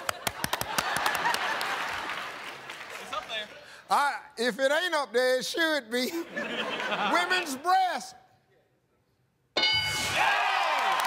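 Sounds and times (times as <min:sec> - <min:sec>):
audience cheering and applause: 0:00.0 - 0:03.6, 0:10.0 - 0:11.0
game show ding: 0:09.6 - 0:10.2.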